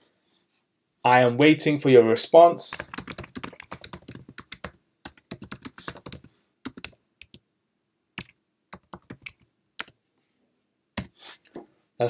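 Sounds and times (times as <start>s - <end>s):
keyboard typing: 2.7s - 7.4s, 8.2s - 10.0s, 11.0s - 11.2s.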